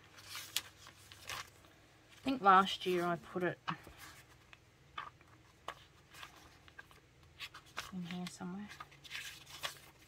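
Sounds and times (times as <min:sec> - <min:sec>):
paper pages rustling: 0:00.0 - 0:10.0.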